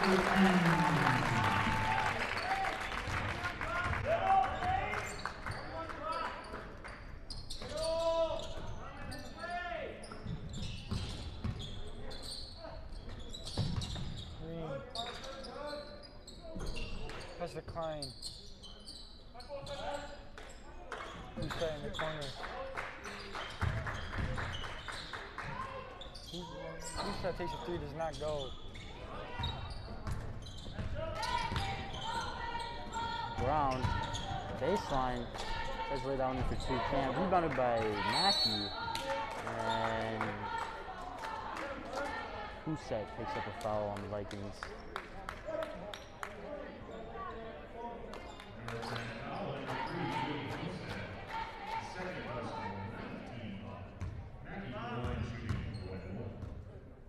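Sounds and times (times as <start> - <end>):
voices in a large gym: 0.0 - 57.0.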